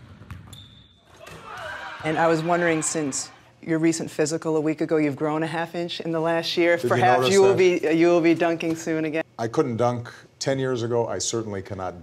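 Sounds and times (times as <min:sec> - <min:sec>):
basketball bouncing on wooden floor: 0:00.0 - 0:00.6.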